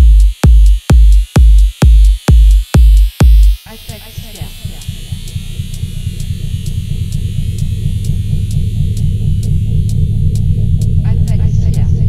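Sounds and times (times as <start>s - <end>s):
distorted buzzing bass synth: 0.0s - 12.0s
high tick: 0.2s - 11.0s.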